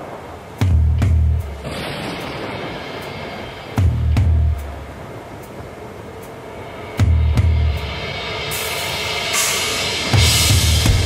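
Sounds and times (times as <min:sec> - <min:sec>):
cymbal wash: 0:00.0 - 0:11.0
bass and kick drum hits: 0:00.6 - 0:02.6, 0:03.8 - 0:04.7, 0:09.4 - 0:11.0.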